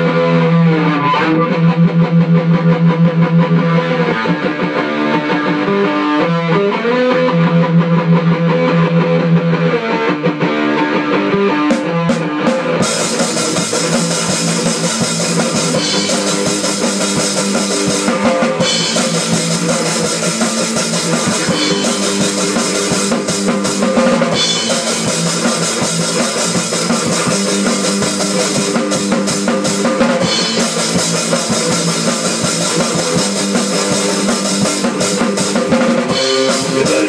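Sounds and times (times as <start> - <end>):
electric guitar through amplifier: 0.0 - 37.0
live band playing: 9.8 - 37.0
drum kit steady beat: 11.7 - 37.0.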